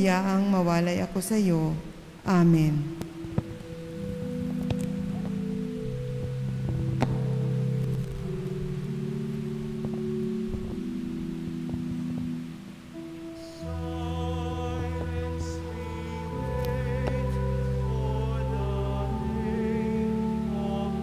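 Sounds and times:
organ playing slow chords: 2.0 - 21.0.

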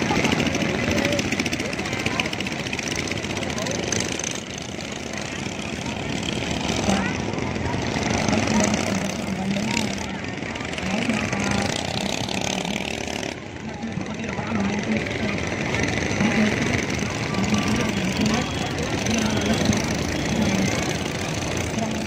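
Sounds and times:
boat engines humming: 0.0 - 22.0
crowd chatter: 0.0 - 22.0.

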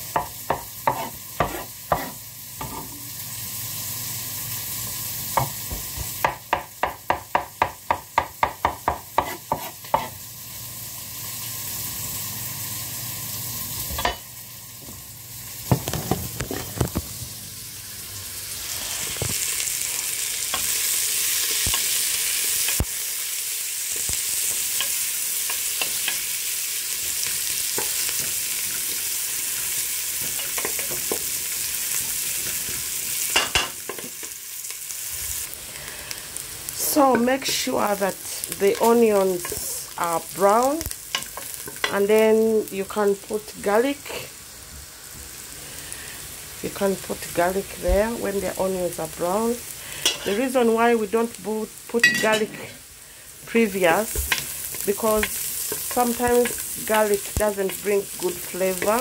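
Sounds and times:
onions sizzling in a pot: 0.0 - 59.0
knife chopping on wooden board: 0.2 - 2.1, 6.2 - 10.1.

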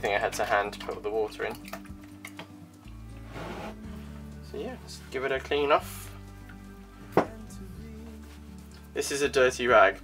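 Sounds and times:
background music low tones: 0.0 - 10.0.

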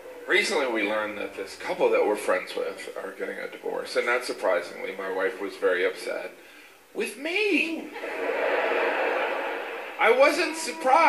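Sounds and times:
audience laughing: 7.9 - 10.4.

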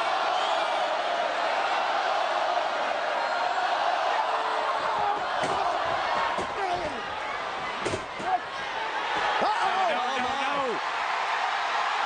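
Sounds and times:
crowd cheering and yelling: 0.0 - 12.0.

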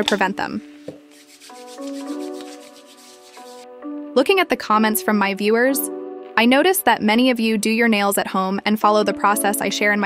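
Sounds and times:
soft background music: 0.0 - 10.0
hands rubbing together: 0.9 - 3.7.

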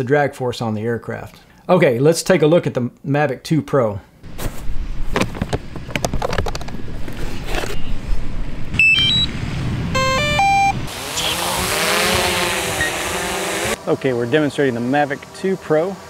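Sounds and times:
handling knocks and clicks: 5.1 - 7.8
electronic beeps: 8.8 - 9.3, 10.0 - 11.4
drone propellers buzzing: 9.3 - 16.0
power-on chime: 10.0 - 11.5.

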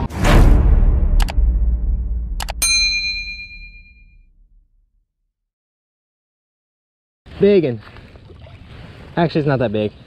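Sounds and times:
low rumble: 0.0 - 2.6
notification bell ding: 2.4 - 4.2.

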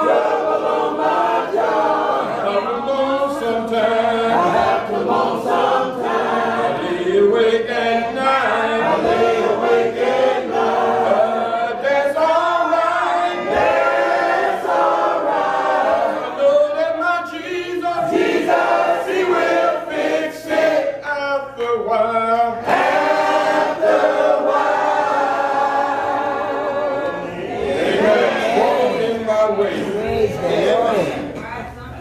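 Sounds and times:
congregation singing a hymn: 0.0 - 31.4.

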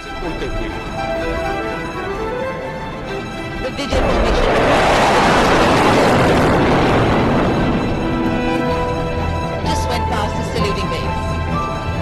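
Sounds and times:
jet engines roaring overhead: 0.0 - 12.0.

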